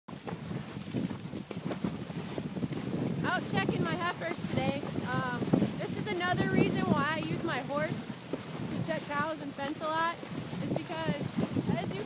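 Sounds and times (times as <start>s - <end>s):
water sloshing and splashing: 0.1s - 12.0s
wind buffeting microphone: 0.1s - 12.0s.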